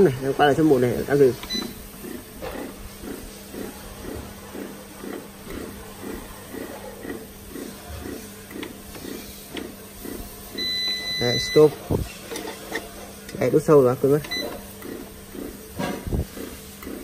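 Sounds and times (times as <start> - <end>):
bread maker motor humming: 0.0 - 17.0
long electronic beep: 10.6 - 11.8.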